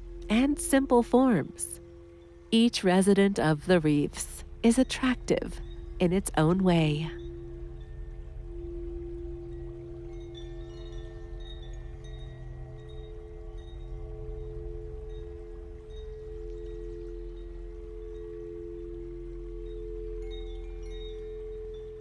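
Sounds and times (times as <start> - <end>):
sustained drone: 0.0 - 20.7.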